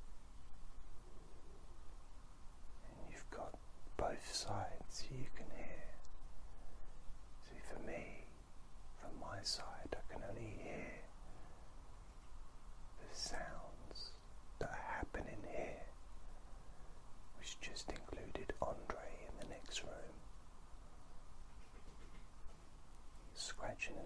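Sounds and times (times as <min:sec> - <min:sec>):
man whispering: 0:02.8 - 0:06.2, 0:07.4 - 0:08.4, 0:09.0 - 0:11.2, 0:13.0 - 0:16.0, 0:17.3 - 0:20.2, 0:23.3 - 0:24.0.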